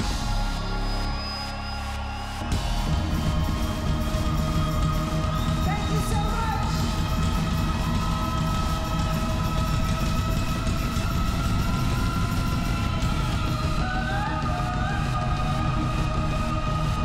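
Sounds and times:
drums and bass pulse: 0.0 - 17.0.

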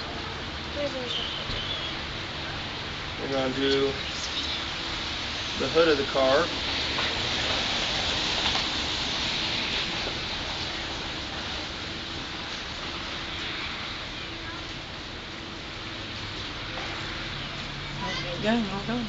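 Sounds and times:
outdoor background hiss: 0.0 - 19.0.

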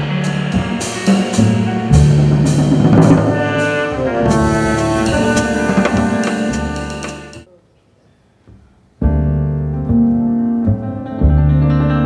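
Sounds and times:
plucked double bass: 0.0 - 7.4, 9.0 - 12.0
piano chords: 0.0 - 7.5, 9.0 - 12.0.

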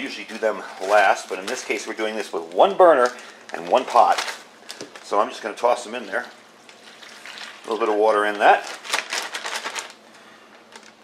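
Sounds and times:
plastic bag crinkling: 0.1 - 11.0.

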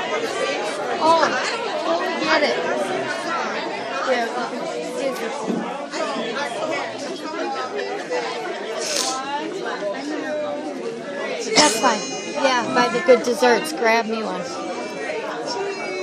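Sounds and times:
people talking indistinctly: 0.0 - 16.0.

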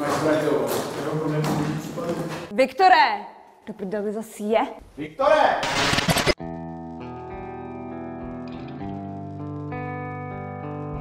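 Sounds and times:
man talking: 0.0 - 2.5, 5.0 - 5.7.

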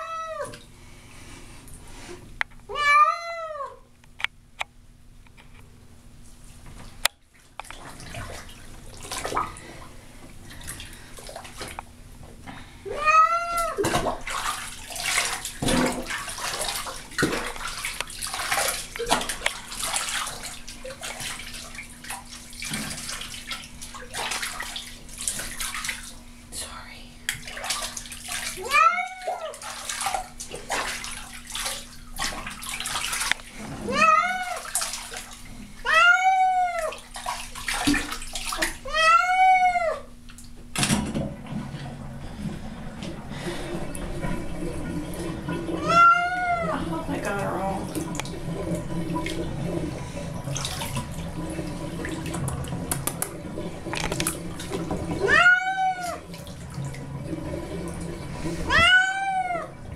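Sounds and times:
cat meowing: 2.7 - 3.8, 12.9 - 13.8, 28.6 - 29.5, 33.9 - 34.7, 35.8 - 37.0, 38.8 - 40.1, 45.8 - 46.8, 55.2 - 56.2, 58.7 - 59.7
bathwater splashing: 6.4 - 12.0, 12.6 - 26.5, 27.2 - 59.9.

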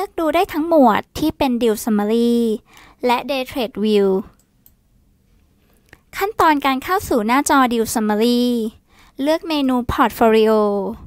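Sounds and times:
person speaking: 0.0 - 4.4, 6.2 - 11.0
computer mouse click: 4.3 - 4.8.

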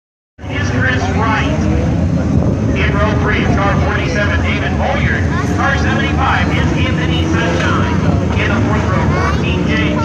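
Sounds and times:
race car engines rumbling: 0.4 - 10.0.

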